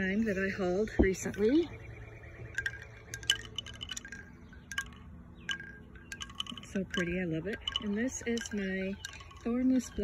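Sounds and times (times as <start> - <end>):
bamboo wind chime clacking: 1.0 - 10.0.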